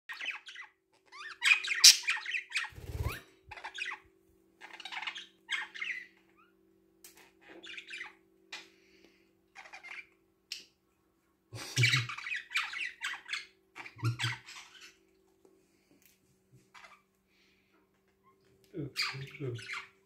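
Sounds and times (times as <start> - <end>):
budgerigars chirping and squawking: 0.1 - 6.5, 7.2 - 8.9, 9.5 - 10.8, 11.6 - 15.1, 16.7 - 17.1, 18.8 - 20.0.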